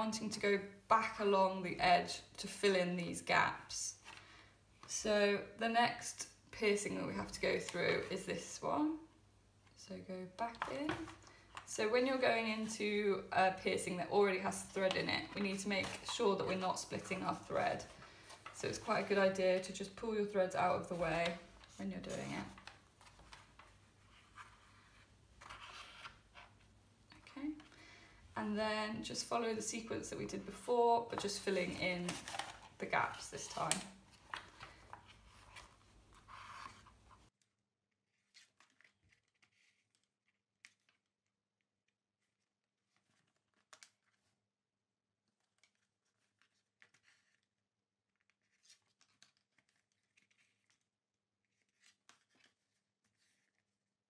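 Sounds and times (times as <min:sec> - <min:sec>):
paper and thread rustling: 0:13.6 - 0:27.7, 0:29.1 - 0:37.3, 0:38.1 - 0:41.1, 0:42.2 - 0:44.4, 0:45.2 - 0:47.5, 0:48.2 - 0:53.8
thread drawn through paper: 0:38.1 - 0:41.0, 0:48.2 - 0:50.8, 0:51.4 - 0:53.8.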